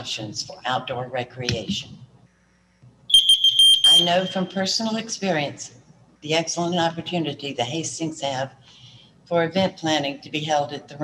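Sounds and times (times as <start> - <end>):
high electronic timer beep: 3.1 - 4.5.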